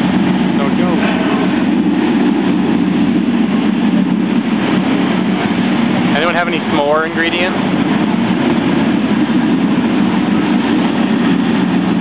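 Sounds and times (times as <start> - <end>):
low roar of volcano attraction: 0.0 - 12.0.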